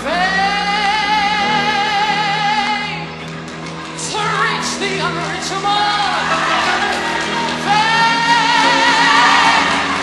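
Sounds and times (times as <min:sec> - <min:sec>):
choir accompaniment: 0:06.0 - 0:10.0.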